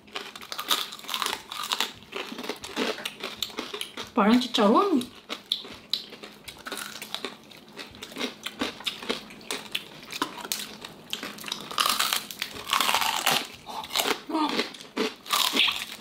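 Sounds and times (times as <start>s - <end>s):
crunching bite: 0.0s - 4.1s, 5.1s - 16.0s.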